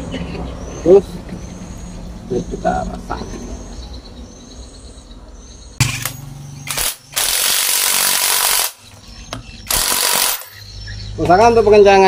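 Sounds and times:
power tool tightening bolts: 6.7s - 8.8s, 9.7s - 10.6s.

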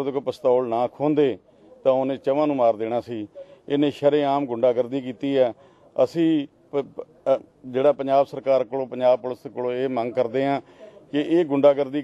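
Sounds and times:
old man speaking unsteadily: 0.0s - 12.0s.

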